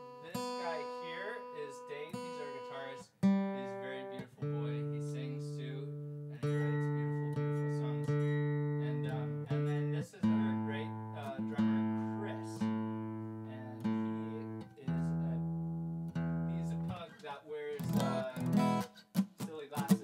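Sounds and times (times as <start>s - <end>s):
guitar chords strummed: 0.0s - 17.1s, 17.8s - 20.0s.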